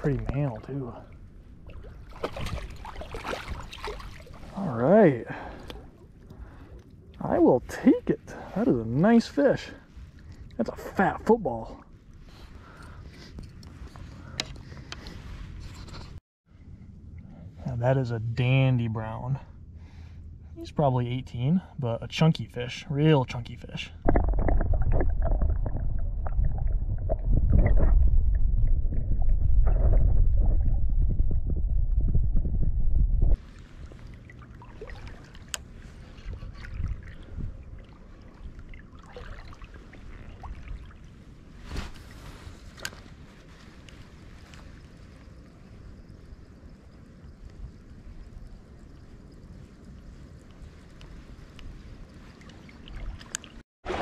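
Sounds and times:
stream flowing: 0:01.6 - 0:04.6, 0:33.5 - 0:41.4, 0:52.0 - 0:54.0
water sloshing around landing net: 0:01.6 - 0:04.6, 0:33.5 - 0:42.2, 0:52.3 - 0:54.0.

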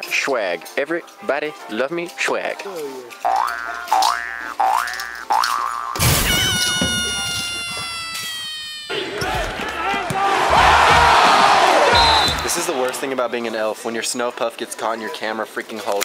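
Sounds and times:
cartoon boing effects: 0:03.3 - 0:07.2.

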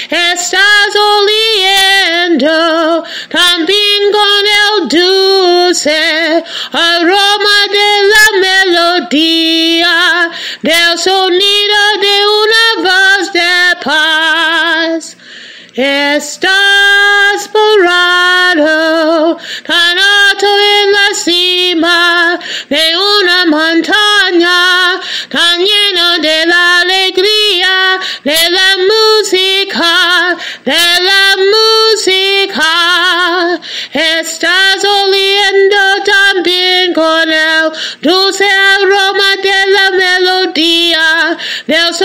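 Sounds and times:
woman singing unaccompanied: 0:00.0 - 0:42.0.

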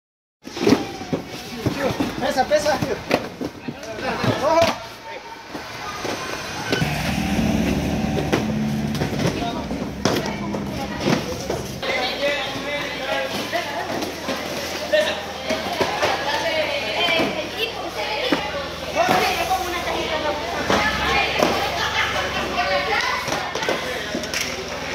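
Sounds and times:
people talking and calling out: 0:02.8 - 0:24.9
vehicle engine humming: 0:05.5 - 0:13.2.

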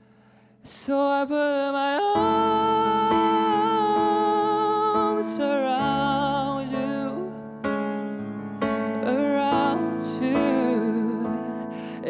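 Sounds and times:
electric piano chords: 0:02.0 - 0:12.0.

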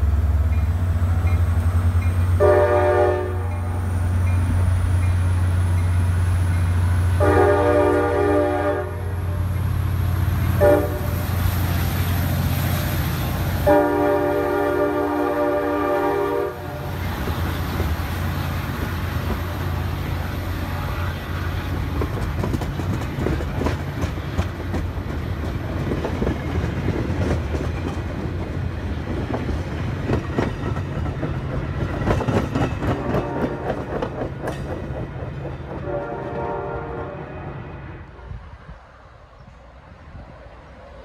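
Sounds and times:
train horn: 0:02.4 - 0:03.8, 0:07.1 - 0:09.4, 0:10.5 - 0:11.3, 0:13.6 - 0:17.6, 0:32.8 - 0:33.9, 0:35.8 - 0:38.4
train wheels clicking over rail joints: 0:21.5 - 0:36.5.

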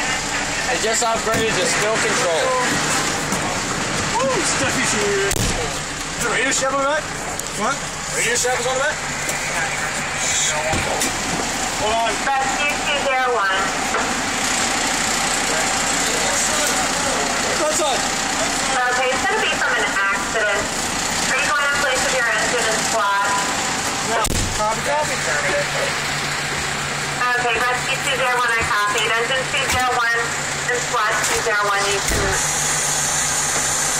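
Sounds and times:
truck engine and road noise: 0:00.0 - 0:33.9
low thump: 0:24.3 - 0:24.6.

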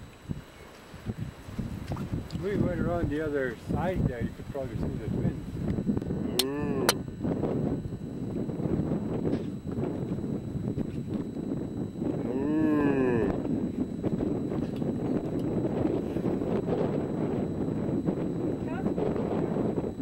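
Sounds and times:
wind rumble on microphone: 0:00.0 - 0:20.0.

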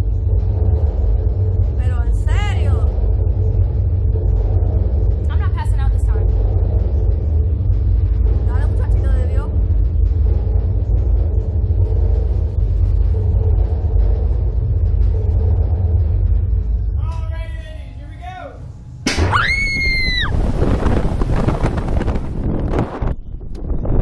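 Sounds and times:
ride machinery low rumble: 0:00.0 - 0:24.0.

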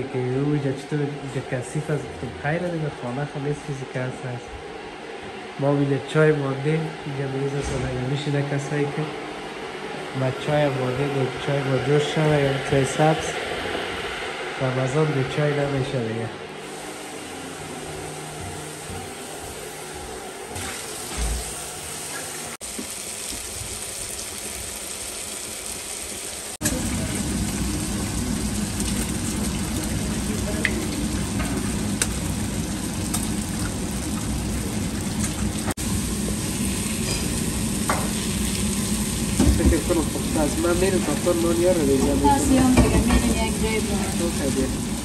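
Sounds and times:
food sizzling in a pan: 0:16.6 - 0:45.0.

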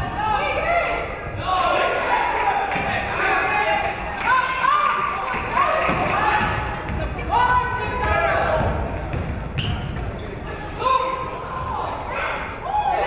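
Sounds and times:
sneakers squeaking: 0:05.4 - 0:12.7.

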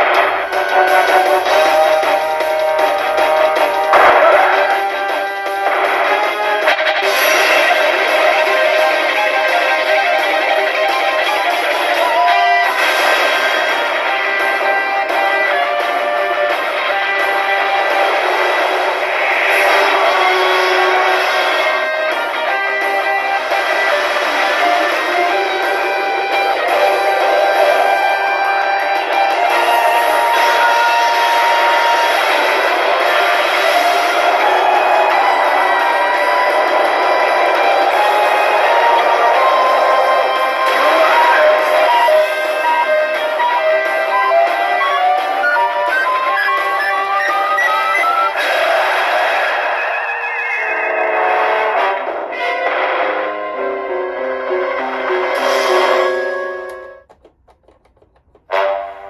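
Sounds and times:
arcade machine music: 0:00.0 - 0:48.8, 0:52.5 - 0:58.8.

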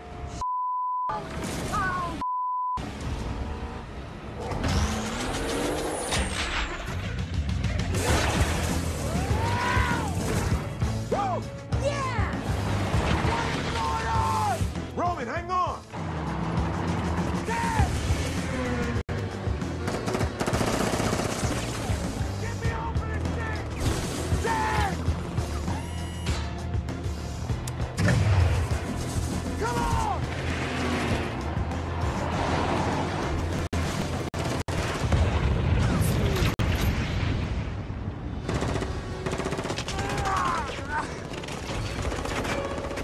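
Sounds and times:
action film music score: 0:02.8 - 0:43.0
people shouting: 0:09.0 - 0:10.2, 0:13.2 - 0:14.7, 0:17.4 - 0:18.0, 0:24.3 - 0:25.1, 0:29.6 - 0:30.2, 0:39.8 - 0:41.2
rapid gunfire: 0:19.6 - 0:22.4, 0:33.8 - 0:36.6, 0:38.4 - 0:43.0.

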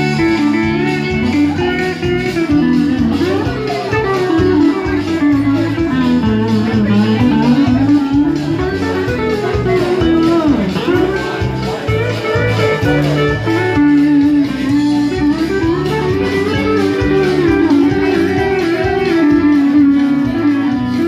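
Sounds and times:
live band with pulsing bass: 0:00.0 - 0:21.0.

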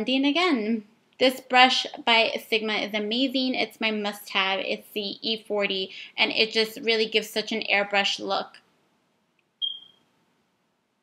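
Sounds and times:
short high-pitched tone: 0:09.6 - 0:09.9.

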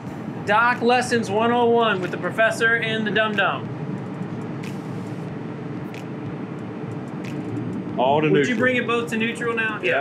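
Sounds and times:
boat engines humming: 0:00.0 - 0:10.0.

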